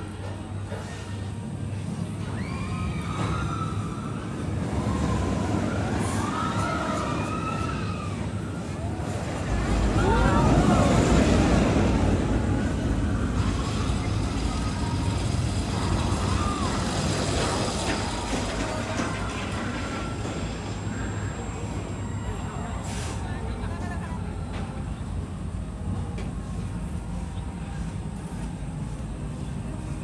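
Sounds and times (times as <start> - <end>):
roller coaster rumbling on track: 0.0 - 30.0.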